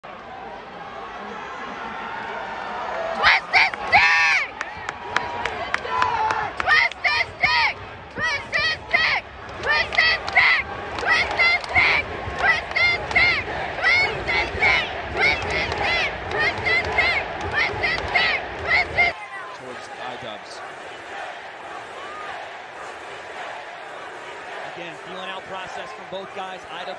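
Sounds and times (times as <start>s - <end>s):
large arena crowd noise: 0.0s - 26.9s.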